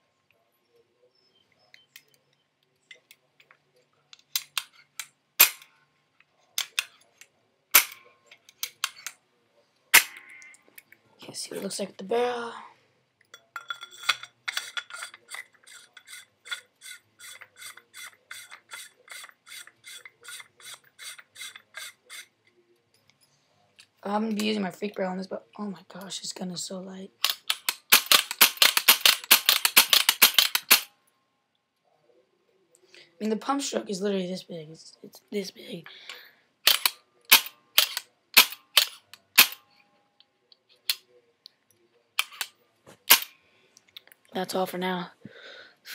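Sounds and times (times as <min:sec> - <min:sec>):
barrel threads rasping: 0:13.8 - 0:22.3.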